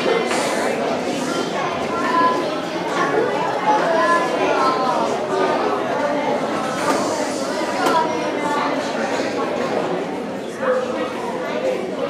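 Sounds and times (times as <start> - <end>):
crowd chatter in hall: 0.0 - 12.0.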